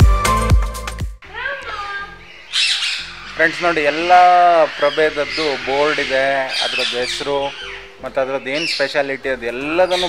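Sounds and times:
bird squawking: 0:01.2 - 0:10.0.

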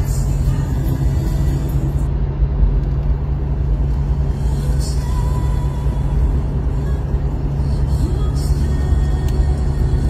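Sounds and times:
engine and road rumble: 0:00.0 - 0:10.0.

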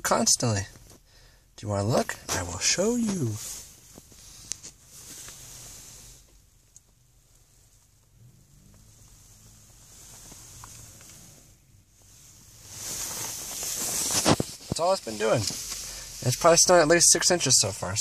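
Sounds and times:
faint rustling: 0:00.0 - 0:17.7
soft hiss: 0:00.0 - 0:18.0.

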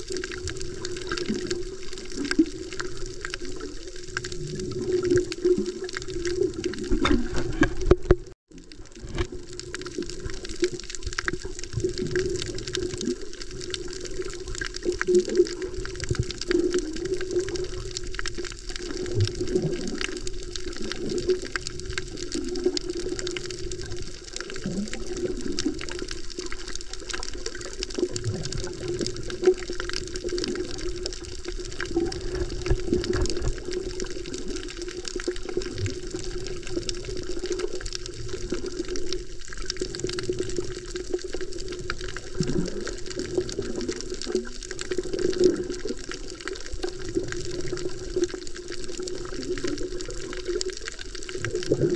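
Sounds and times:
bubbling: 0:00.0 - 0:51.9
muffled underwater rush: 0:00.0 - 0:51.9.

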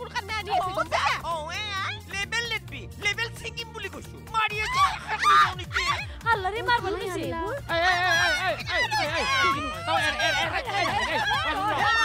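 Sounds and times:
women shouting and shrieking: 0:04.5 - 0:06.9, 0:07.5 - 0:12.0.

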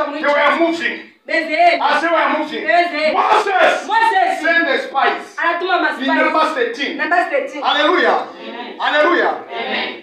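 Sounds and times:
person preaching: 0:00.0 - 0:10.0.

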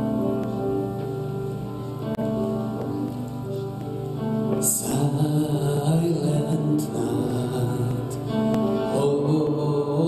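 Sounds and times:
slow church music with singing: 0:00.0 - 0:10.0.

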